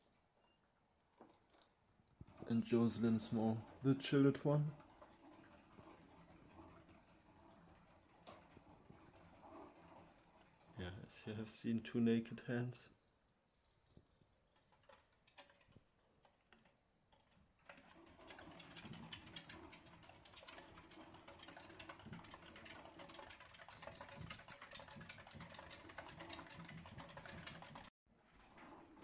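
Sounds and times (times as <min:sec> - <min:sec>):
small animals scratching on wood: 0:01.2 - 0:11.2, 0:14.5 - 0:27.9.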